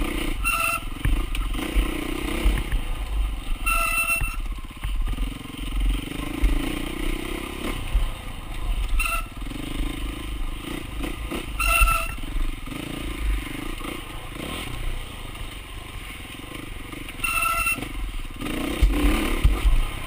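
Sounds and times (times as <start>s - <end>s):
dirt bike engine revving: 0.0s - 20.0s
knocks and clatter from bike: 0.0s - 20.0s.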